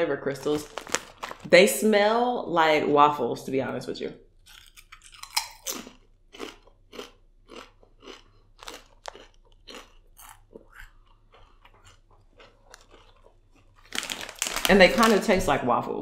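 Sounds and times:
person chewing crisp chips: 0.4 - 1.5, 4.4 - 15.3.

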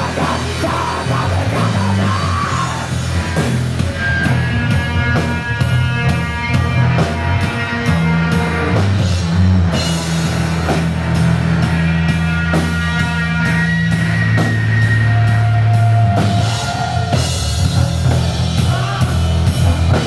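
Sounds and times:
distorted electric guitar: 0.0 - 20.0
heavy rock band playing: 0.0 - 20.0.

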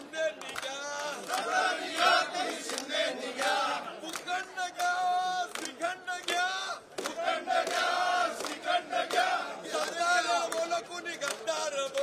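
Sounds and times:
crowd of men chanting: 0.0 - 12.0
people clapping: 0.0 - 12.0.

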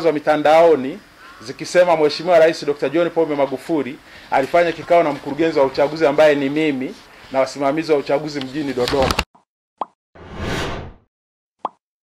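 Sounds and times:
whoosh: 10.2 - 11.0.

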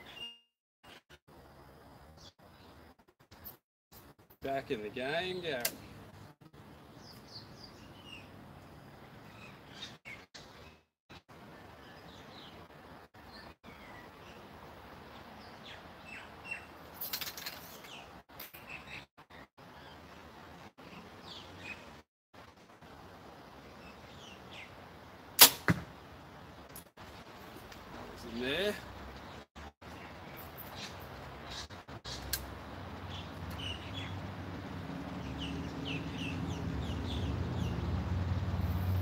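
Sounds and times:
faint bird chirps: 0.0 - 1.1.

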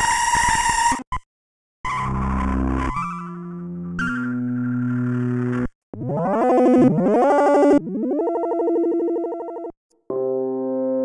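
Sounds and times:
buzzy synthesizer notes: 1.9 - 10.4.

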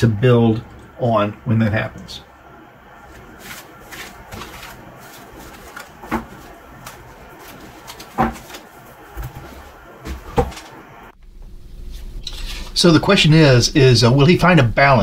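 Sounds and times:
cards rustling and tapped square: 3.4 - 9.3.

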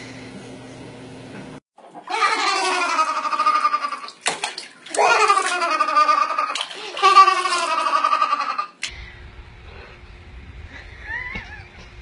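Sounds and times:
water splashing in baby bath: 2.0 - 8.6.

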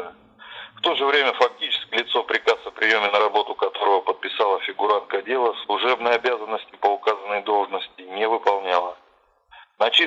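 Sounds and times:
person talking over telephone: 0.8 - 9.1, 9.7 - 10.0.

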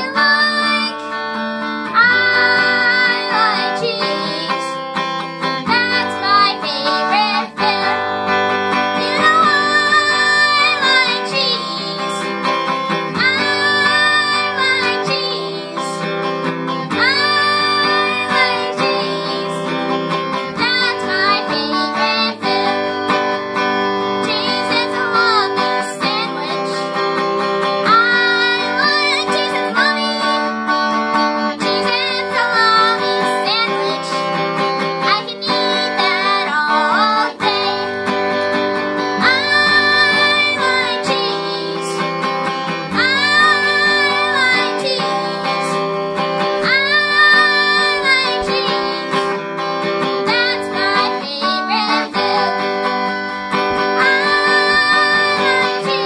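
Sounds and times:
boy singing: 0.0 - 1.2, 1.8 - 16.1, 16.7 - 56.0
electric guitar strumming: 0.0 - 56.0.

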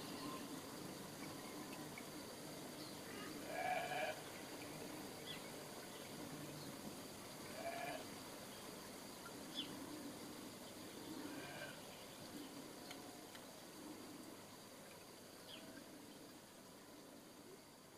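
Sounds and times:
faint bird chirps: 0.0 - 6.8, 7.5 - 17.9
animal calls: 7.5 - 8.0, 11.2 - 11.8.

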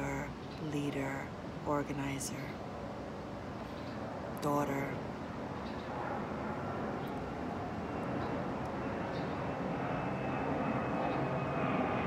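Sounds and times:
airplane engine drone overhead: 0.0 - 12.0.

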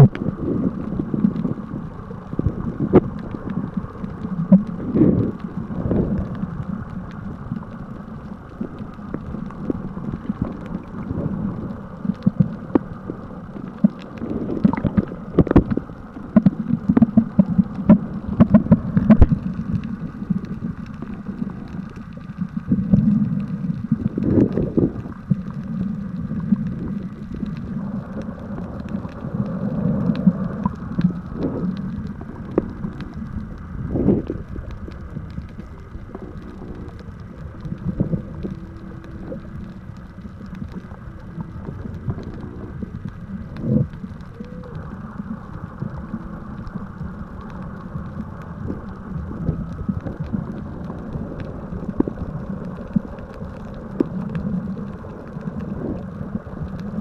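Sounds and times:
muffled underwater rumble and sloshing: 0.0 - 57.0.

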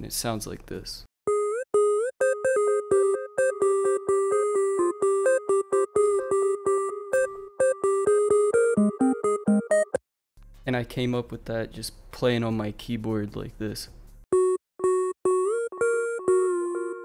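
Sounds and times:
synth lead melody: 1.3 - 10.0, 14.4 - 17.0.

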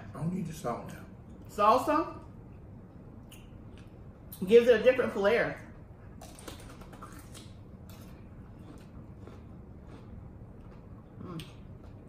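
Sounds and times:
cucumber chewing crunches: 6.2 - 12.0.

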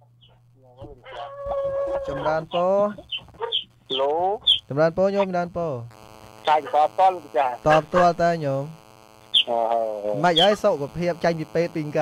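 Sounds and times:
rooster crowing: 0.9 - 2.6.

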